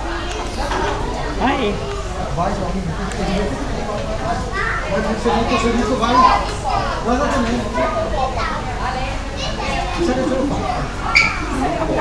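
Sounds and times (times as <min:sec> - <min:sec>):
children's voices: 0:03.0 - 0:12.0.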